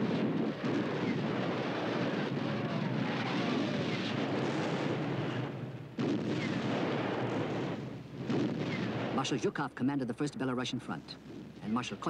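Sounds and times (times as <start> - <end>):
artillery barrage rumbling: 0.0 - 9.5.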